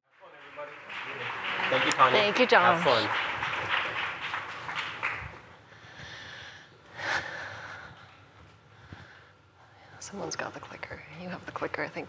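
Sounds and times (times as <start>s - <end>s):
faint room noise: 0.1s - 12.0s.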